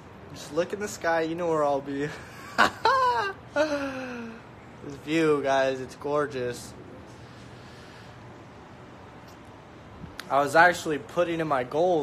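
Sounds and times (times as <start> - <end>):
man laughing: 2.0 - 4.5.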